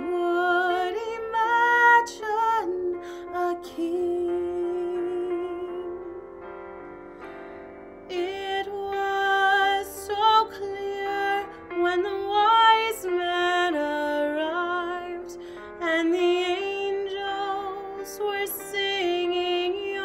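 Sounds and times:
woman singing with vibrato: 0.0 - 6.3, 8.1 - 20.0.

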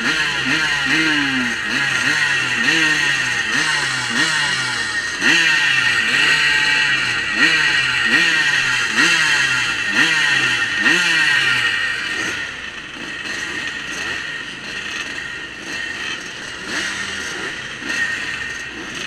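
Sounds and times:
engines buzzing together: 0.0 - 19.0
motocross bike throttle blips: 0.0 - 19.0.

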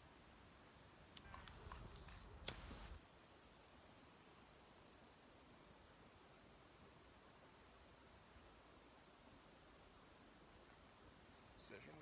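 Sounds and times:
lighter hiss: 1.1 - 3.0.

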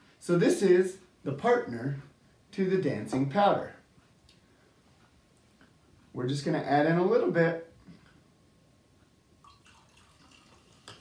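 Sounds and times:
liquid trickling and dripping: 9.4 - 11.0.

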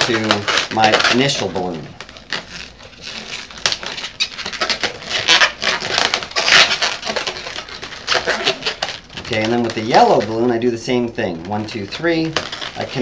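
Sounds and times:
balloons squeaking and rubbing: 0.0 - 13.0.

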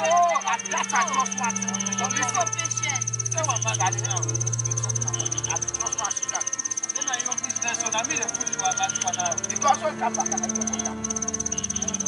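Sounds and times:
crickets chirping: 0.0 - 12.0
low hum: 1.1 - 7.8.

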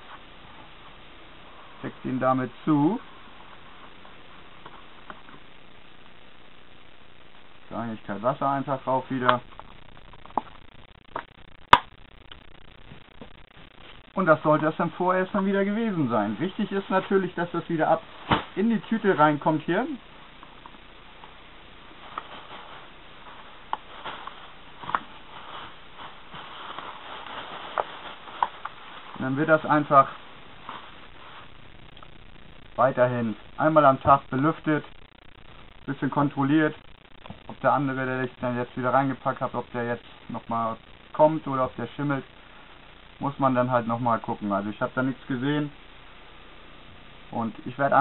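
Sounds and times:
low steady hiss: 0.0 - 48.0
sharp crackles: 3.0 - 48.0
plastic bag rustling: 22.0 - 31.6.

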